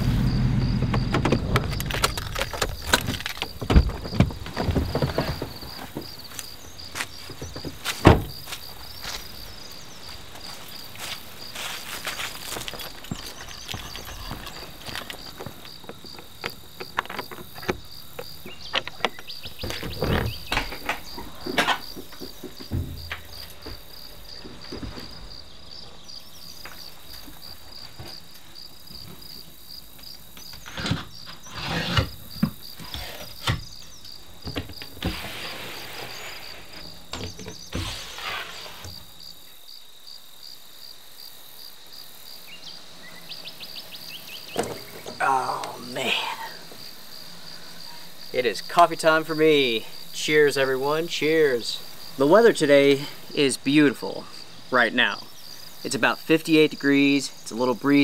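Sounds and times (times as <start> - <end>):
crickets trilling: 0.0 - 58.0.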